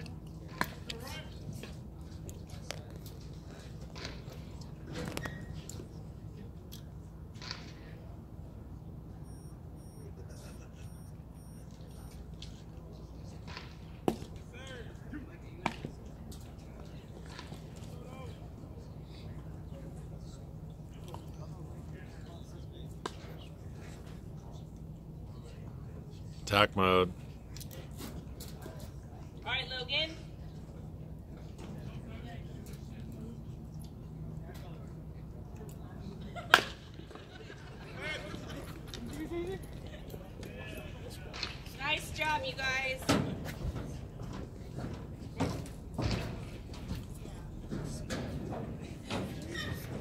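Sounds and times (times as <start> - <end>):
faint distant voices: 0.0 - 26.4
steady low hum: 0.0 - 49.4.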